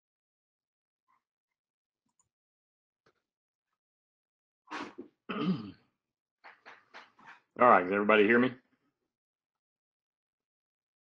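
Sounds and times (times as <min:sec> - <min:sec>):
man clearing his throat: 0:04.8 - 0:05.8.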